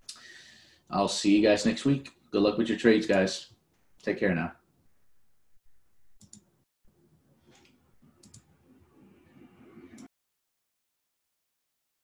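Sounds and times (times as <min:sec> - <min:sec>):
faint mouse clicks: 0:06.2 - 0:06.5, 0:07.6 - 0:08.5.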